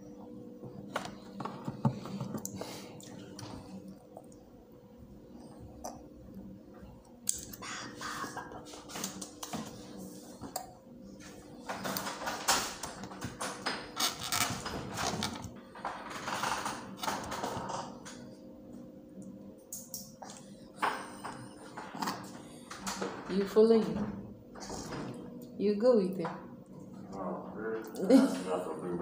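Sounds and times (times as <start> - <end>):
faint low hum: 0.0 - 16.0, 17.2 - 29.0.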